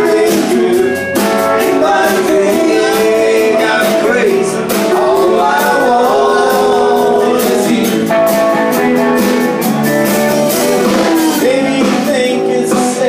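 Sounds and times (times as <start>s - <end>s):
man singing: 0.0s - 8.8s, 10.5s - 13.0s
live rock band playing: 0.0s - 13.0s.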